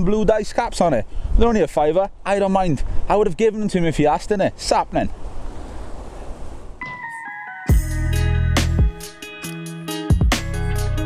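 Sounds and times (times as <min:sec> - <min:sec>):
wind blowing across microphone: 0:00.0 - 0:06.8
sustained musical tones: 0:06.8 - 0:09.6.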